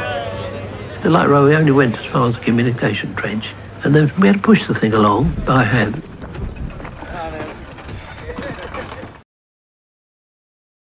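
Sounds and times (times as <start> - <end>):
trolley rumbling on rail track: 0.0 - 9.2
trolley knocking: 5.0 - 9.2.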